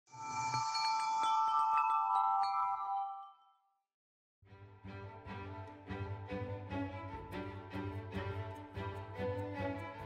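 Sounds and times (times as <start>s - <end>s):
bell-like chiming tones: 0.1s - 3.8s.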